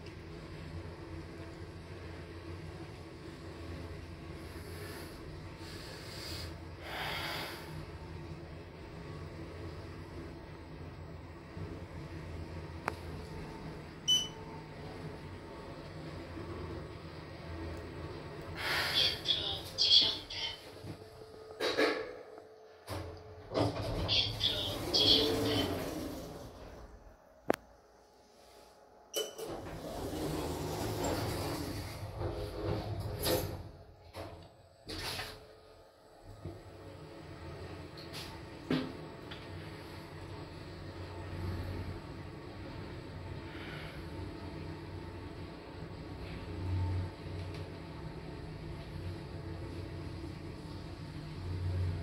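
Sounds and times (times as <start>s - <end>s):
elevator humming: 0.0s - 52.0s
short beep: 14.1s - 14.4s
elevator doors clattering open: 22.9s - 26.4s, 29.2s - 33.8s.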